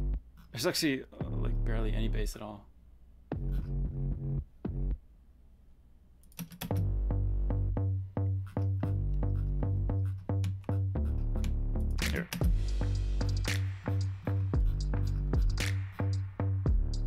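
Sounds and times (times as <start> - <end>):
punchy electronic bass notes: 0.0 - 0.3, 3.3 - 5.0, 6.7 - 17.0.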